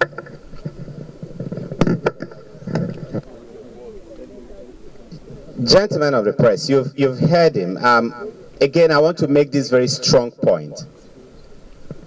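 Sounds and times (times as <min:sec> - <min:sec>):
microphone handling rustling: 0:00.0 - 0:05.8.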